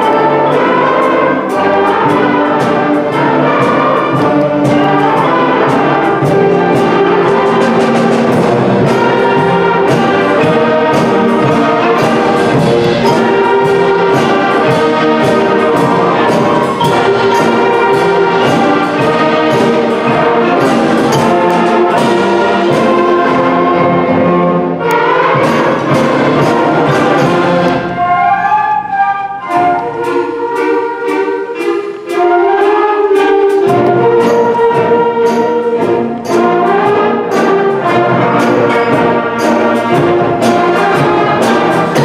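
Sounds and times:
concert band playing: 0.0s - 42.0s.

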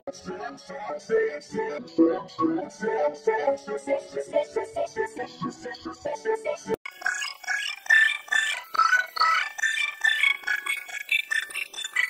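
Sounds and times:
stuttering processed cartoon voice: 6.9s - 12.0s.

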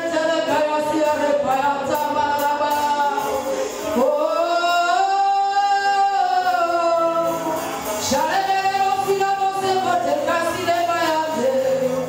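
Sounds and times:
woman singing into a microphone: 0.0s - 12.0s
breath: 3.4s - 4.0s.

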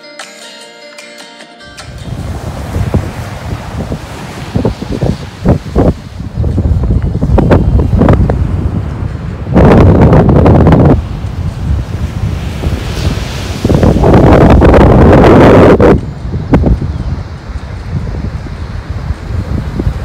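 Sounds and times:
surf breaking on beach: 1.9s - 20.0s
wind buffeting microphone: 2.0s - 20.0s.

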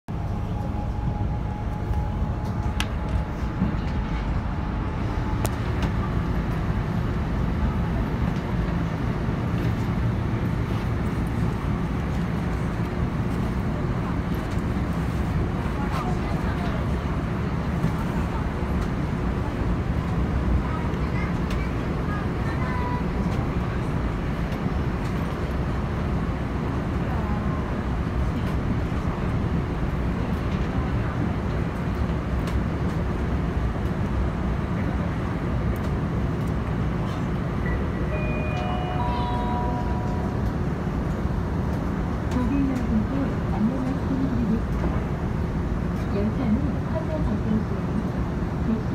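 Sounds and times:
subway train running: 0.1s - 48.9s.

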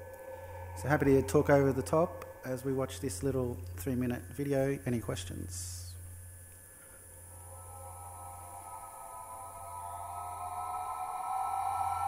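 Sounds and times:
synthesizer drone: 0.0s - 4.3s, 6.0s - 12.0s
low steady hum: 0.0s - 12.0s.

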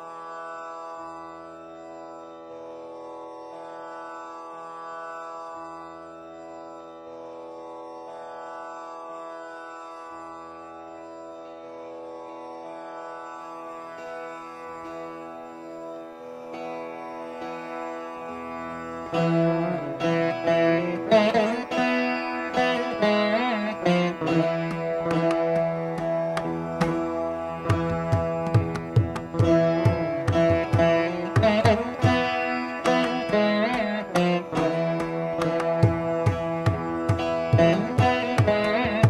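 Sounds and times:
veena music over drone: 0.0s - 39.0s.

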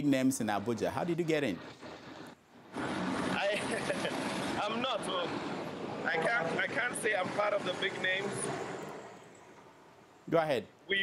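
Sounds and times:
steady rush of line noise: 0.0s - 11.0s
man laughing: 3.4s - 4.2s.

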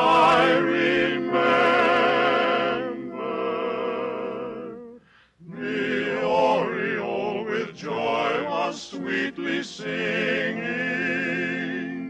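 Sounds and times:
male quartet singing in harmony: 0.0s - 12.0s.

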